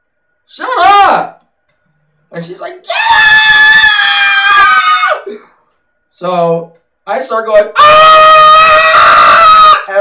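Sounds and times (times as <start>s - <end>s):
man screaming in falsetto: 7.8s - 10.0s.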